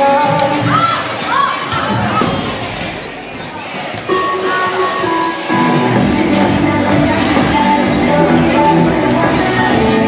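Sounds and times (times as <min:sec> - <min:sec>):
music over sound system: 0:00.0 - 0:00.6, 0:04.0 - 0:10.0
echoing voices and chatter: 0:00.0 - 0:10.0.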